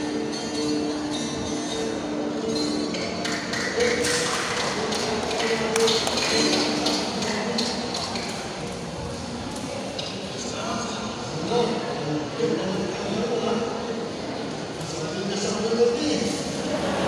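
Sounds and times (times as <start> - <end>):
speech over loudspeakers: 0.0 - 17.0.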